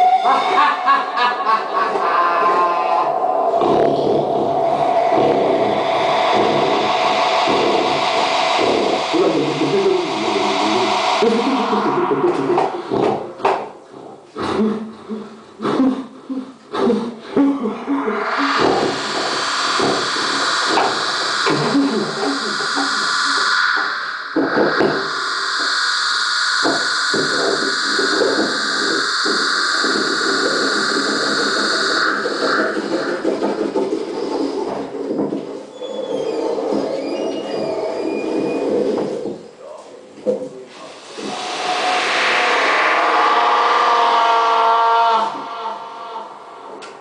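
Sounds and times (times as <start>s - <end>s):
high hissing drones: 0.0s - 13.9s, 17.6s - 39.6s, 40.6s - 47.0s
crackling low electronic noise: 0.6s - 14.3s, 17.6s - 35.6s, 38.0s - 47.0s.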